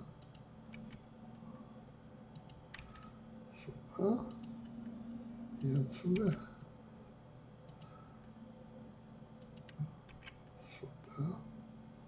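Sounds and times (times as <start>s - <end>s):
computer mouse clicks: 0.2s - 1.0s, 2.3s - 3.1s, 4.3s - 4.7s, 7.7s - 8.0s, 9.4s - 10.4s.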